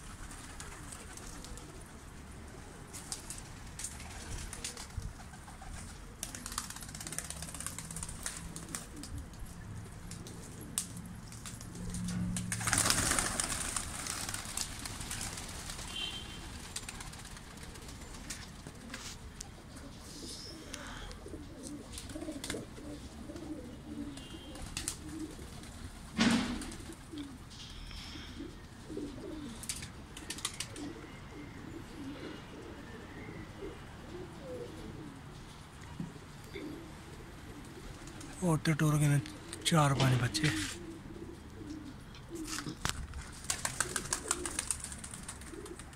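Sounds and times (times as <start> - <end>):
pigeon wings flapping: 0.0 - 2.0, 2.6 - 19.2, 21.6 - 22.8, 23.4 - 27.4, 29.6 - 30.9, 37.6 - 38.4, 42.4 - 45.9
pigeons cooing: 0.0 - 45.9
sharp loud knock: 26.2 - 26.6.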